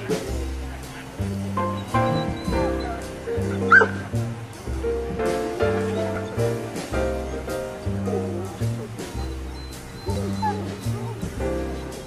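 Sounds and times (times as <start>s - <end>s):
background music: 0.0s - 12.0s
dog yelping: 1.6s - 4.1s, 9.2s - 12.0s.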